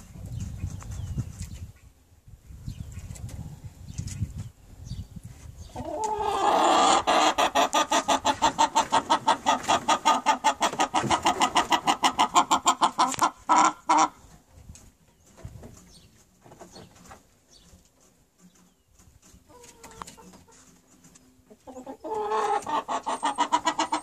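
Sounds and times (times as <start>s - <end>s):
hen clucking: 5.6s - 14.5s, 19.4s - 24.0s.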